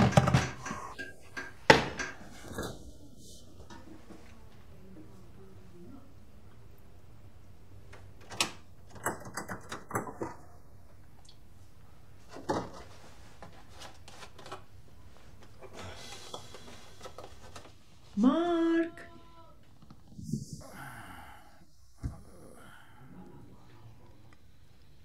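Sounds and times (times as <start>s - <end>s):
items knocking on fridge shelves: 0.0s - 2.5s.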